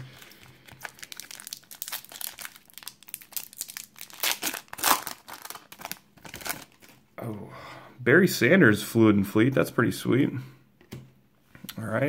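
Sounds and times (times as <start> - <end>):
foil wrapper crinkling and tearing: 0.0 - 7.0.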